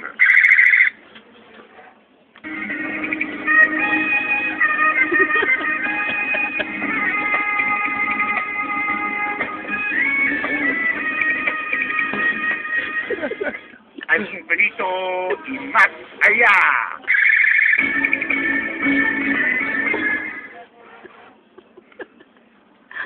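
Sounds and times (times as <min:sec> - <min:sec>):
guitar music from toy speaker: 0:02.4 - 0:13.2, 0:17.1 - 0:20.5.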